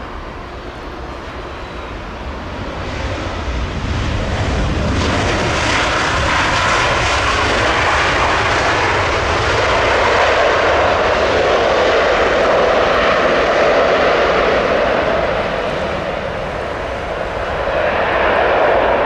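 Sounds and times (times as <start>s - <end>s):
jet engines running loud: 0.0s - 19.0s.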